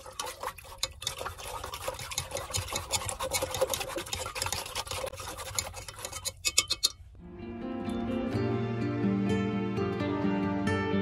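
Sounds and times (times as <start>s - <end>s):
water splashing in a pot: 0.0s - 6.8s
stick ticking against metal pot: 0.0s - 7.1s.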